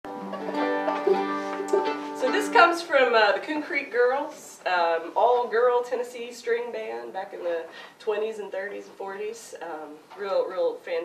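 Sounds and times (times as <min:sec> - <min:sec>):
banjo picking notes: 0:00.0 - 0:03.9.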